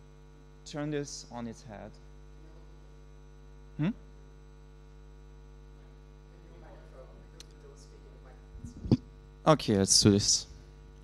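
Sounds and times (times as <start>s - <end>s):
electrical mains hum: 0.0s - 11.0s
man's questioning hmm: 3.8s - 4.1s.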